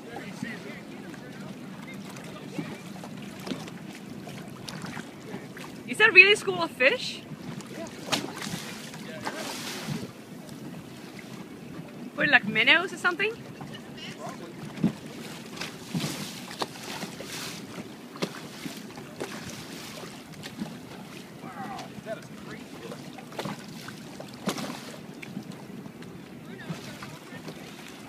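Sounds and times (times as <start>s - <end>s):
sea water lapping and splashing: 0.0s - 28.0s
wind on microphone: 8.2s - 10.9s.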